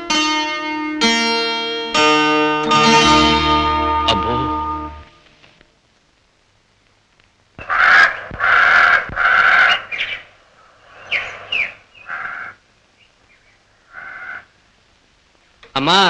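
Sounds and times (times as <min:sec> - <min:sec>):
crow cawing: 0:07.6 - 0:12.6, 0:13.7 - 0:14.6.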